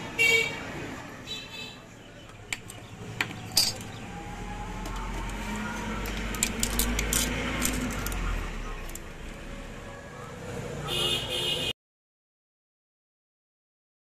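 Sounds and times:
passing vehicle rumble: 1.8 - 11.0.

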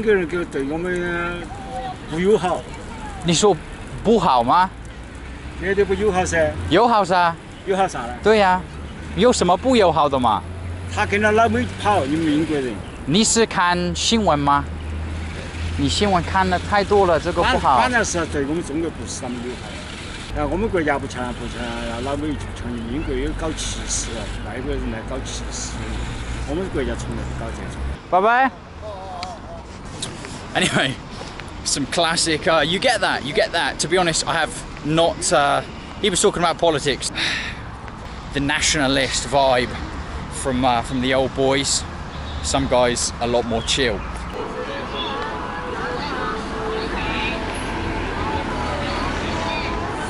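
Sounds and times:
chatter of passers-by: 0.0 - 50.0
low rumble of road traffic: 0.0 - 50.0
man speaking: 15.5 - 28.0, 31.6 - 37.2, 38.3 - 44.1.

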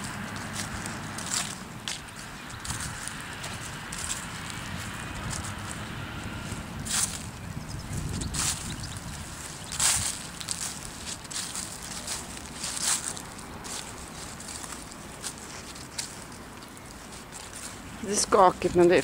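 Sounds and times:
low microphone rumble: 0.0 - 16.4
footsteps on dry grass: 0.0 - 19.0.

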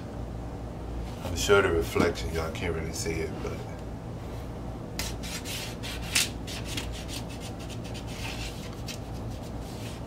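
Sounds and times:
paper and cardboard rubbing: 5.1 - 10.0.

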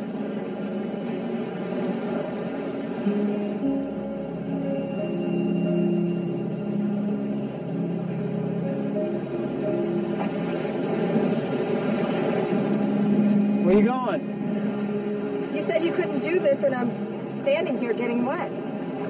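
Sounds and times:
film score with held notes: 0.0 - 19.0.

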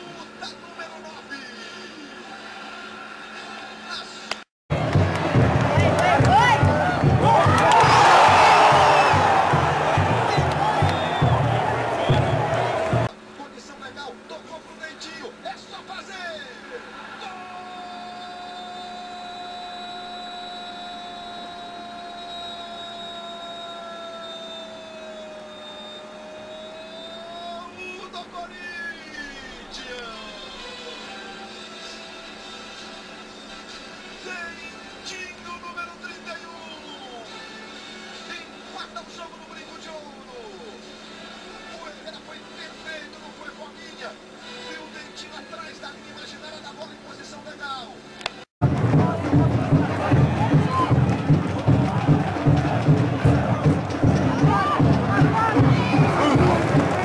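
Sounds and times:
football crowd singing and cheering: 4.7 - 13.1, 48.6 - 57.0
long held tone: 17.9 - 27.6.

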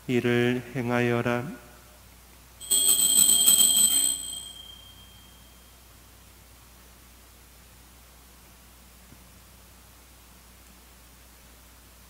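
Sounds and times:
altar bell ringing: 2.6 - 5.5.

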